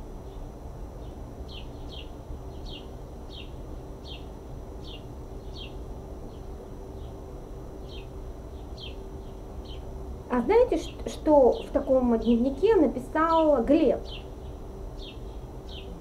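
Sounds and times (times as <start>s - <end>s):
low background rumble: 0.0s - 16.0s
bird chirping: 1.0s - 7.2s, 7.8s - 9.9s, 13.3s - 16.0s.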